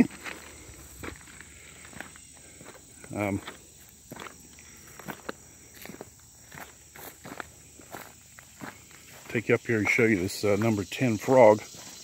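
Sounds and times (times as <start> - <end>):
footsteps on crushed stone: 0.0 - 10.9, 11.5 - 12.0.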